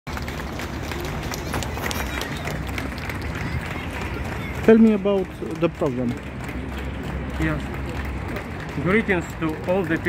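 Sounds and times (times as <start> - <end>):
low street rumble: 0.1 - 10.0.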